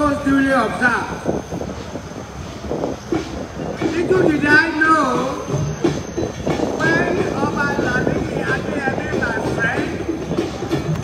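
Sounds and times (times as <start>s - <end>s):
man speaking over public address: 0.0s - 1.4s, 3.7s - 5.7s, 6.5s - 10.6s.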